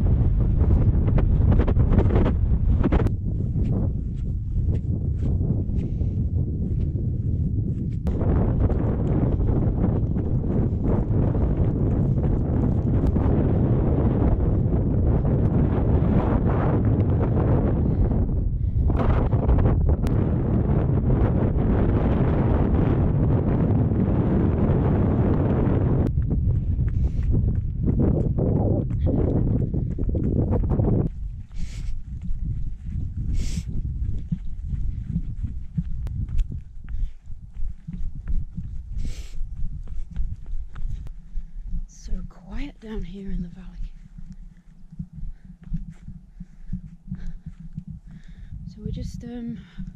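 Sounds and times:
wind buffeting microphone: 0.0 - 49.9
running footfalls on gravel: 7.9 - 13.7, 26.1 - 41.8.

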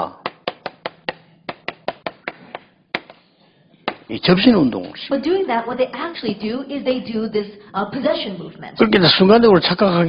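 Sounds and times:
chalk tapping on blackboard: 0.2 - 3.2, 3.8 - 4.1.

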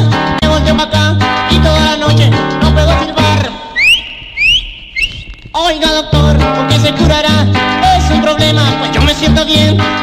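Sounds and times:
cumbia band playing: 0.0 - 10.0
whistle rising swoops: 3.7 - 5.4.

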